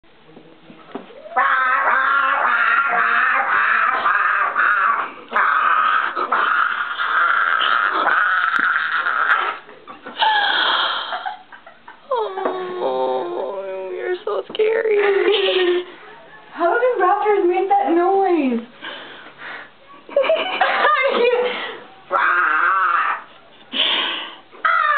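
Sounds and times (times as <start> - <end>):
person screeching: 22.1 - 23.3.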